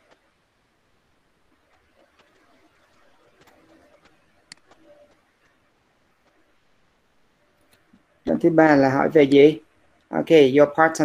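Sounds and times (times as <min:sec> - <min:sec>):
faint clicks: 0:01.5 - 0:06.5.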